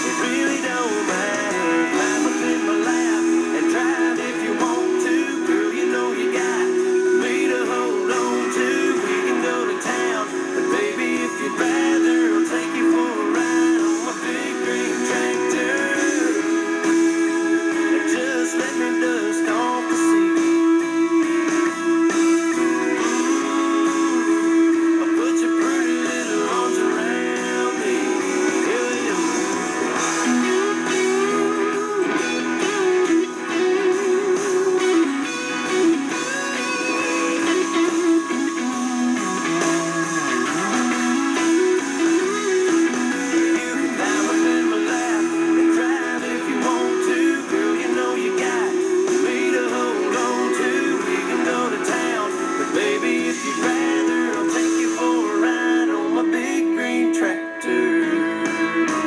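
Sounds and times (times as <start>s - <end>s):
country music on radio: 0.0s - 59.0s.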